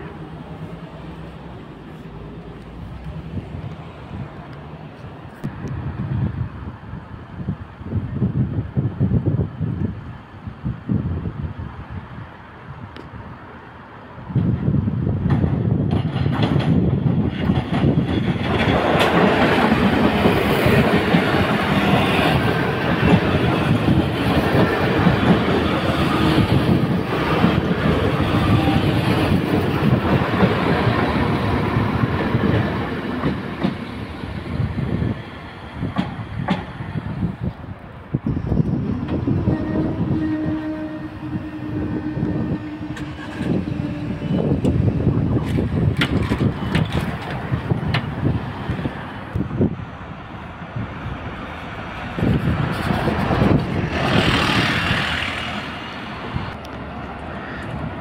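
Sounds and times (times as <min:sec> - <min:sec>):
diesel train engine and wheels: 0:00.0 - 0:58.0
wheels clacking over crossing rails: 0:15.2 - 0:34.4, 0:45.4 - 0:48.3.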